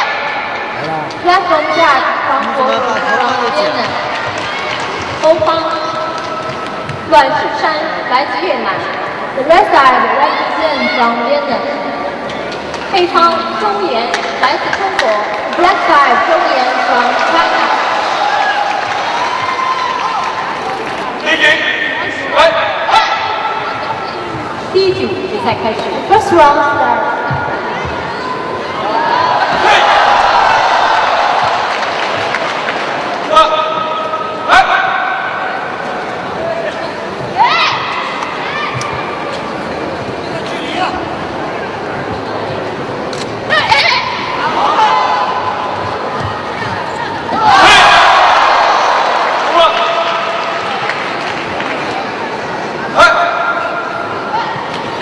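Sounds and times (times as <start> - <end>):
crowd shouting and calling out: 0.0 - 55.0.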